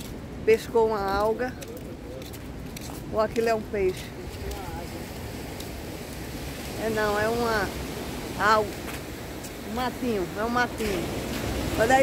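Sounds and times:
traffic rumble: 0.0s - 12.0s
wind: 0.0s - 12.0s.

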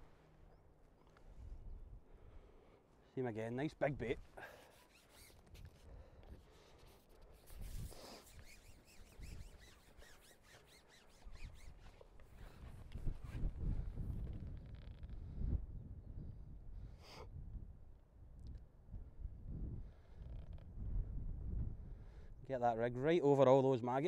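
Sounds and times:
faint clicks and rustles: 4.2s - 15.2s
wind gusting on microphone: 12.4s - 22.5s.

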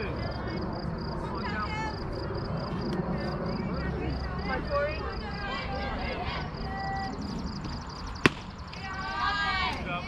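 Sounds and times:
voices calling out: 0.0s - 10.0s
ball smacking into leather mitt: 8.2s - 8.5s.

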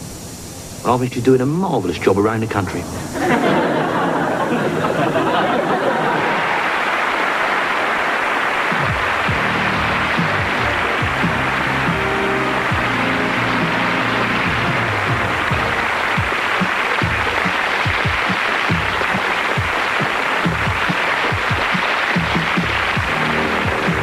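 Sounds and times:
audience applause: 3.2s - 24.0s
theme music with bass and beat: 8.8s - 24.0s.

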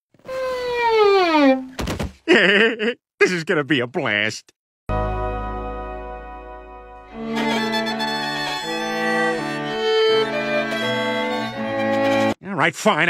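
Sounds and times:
string quartet bowed chords: 4.9s - 12.4s.

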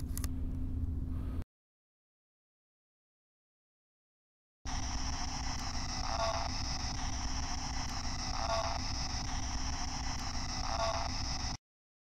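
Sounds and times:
radio static hissing: 4.7s - 11.6s.

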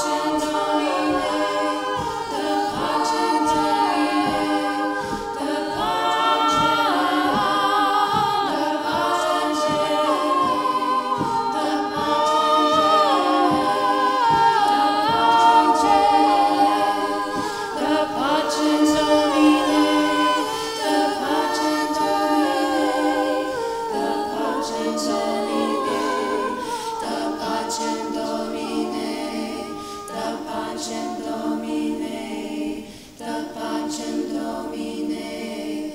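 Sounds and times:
women's choir singing: 0.0s - 35.9s.

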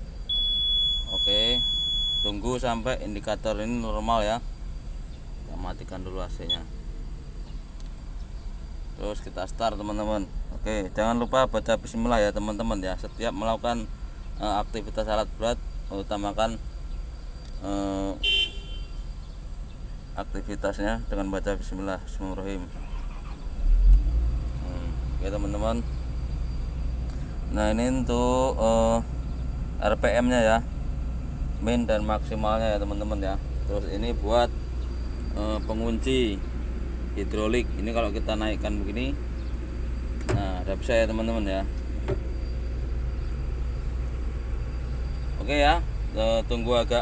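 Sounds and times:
excavator diesel engine starting: 22.6s - 47.0s.

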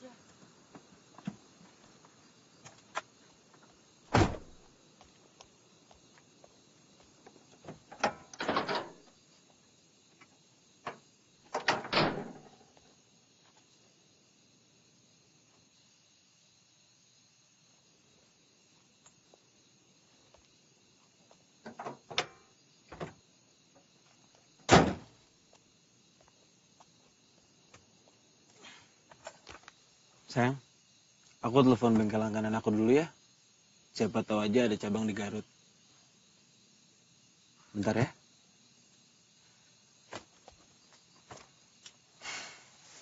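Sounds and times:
car bonnet slamming shut: 4.1s - 4.6s, 24.7s - 25.1s.

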